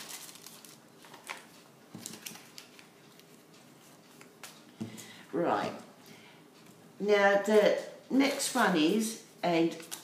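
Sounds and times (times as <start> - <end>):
paper pages rustling: 0.0 - 4.6.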